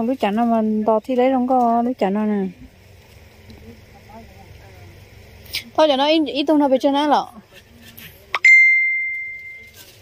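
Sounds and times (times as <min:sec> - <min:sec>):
bell-like ding: 0:08.4 - 0:09.8.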